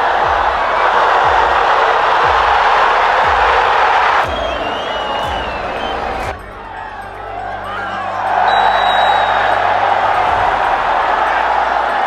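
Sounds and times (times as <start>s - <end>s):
music with deep bass beat: 0.0s - 12.0s
stadium crowd cheering: 0.0s - 12.0s.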